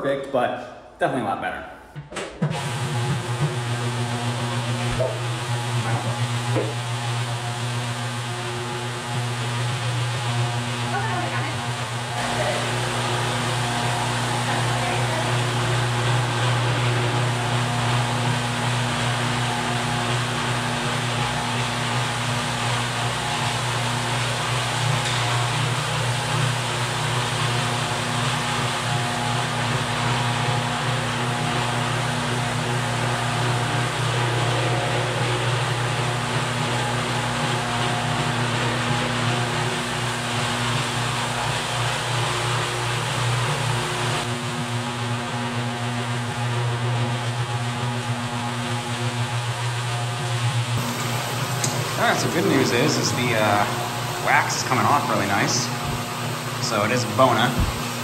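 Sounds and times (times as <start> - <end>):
floor machine motor humming: 2.0 - 58.0.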